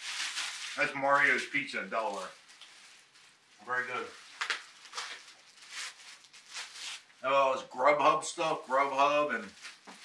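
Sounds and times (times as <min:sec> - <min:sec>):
plastic cover rustling and crinkling: 0:00.0 - 0:10.0.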